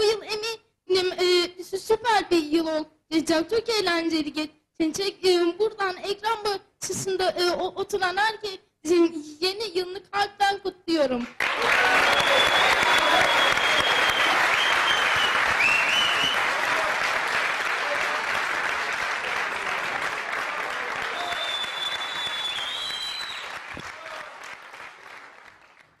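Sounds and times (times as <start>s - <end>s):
audience applauding: 11.3s - 26.0s.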